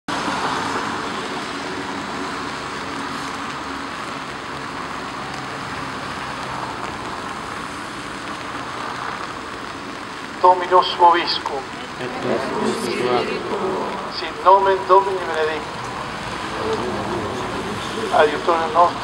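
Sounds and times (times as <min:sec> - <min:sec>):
rain on umbrellas and pavement: 0:00.1 - 0:19.0.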